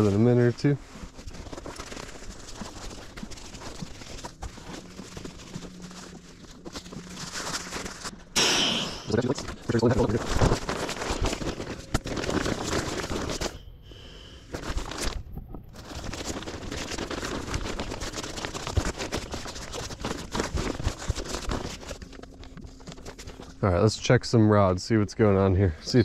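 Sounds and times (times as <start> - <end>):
nylon rustling and crinkling: 0.0 - 8.4, 9.0 - 13.6, 14.4 - 24.5.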